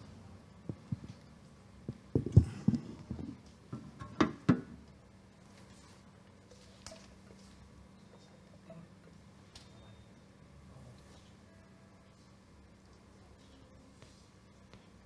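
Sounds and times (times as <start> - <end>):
faint hum: 0.0 - 15.0
microphone thumps and knocks: 1.9 - 3.4.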